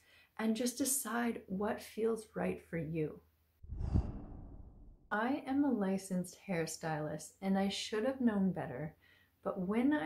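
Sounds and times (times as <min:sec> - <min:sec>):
rushing whoosh with deep rumble: 0:03.6 - 0:05.1.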